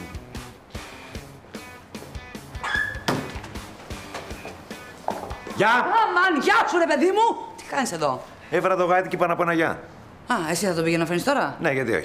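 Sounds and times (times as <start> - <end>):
background music with beat: 0.0 - 5.6
dog yelp: 2.6 - 3.2.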